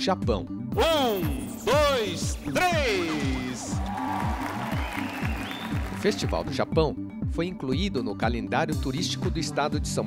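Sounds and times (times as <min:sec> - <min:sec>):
music with bass beat: 0:00.6 - 0:06.6
audience applauding: 0:03.1 - 0:06.6.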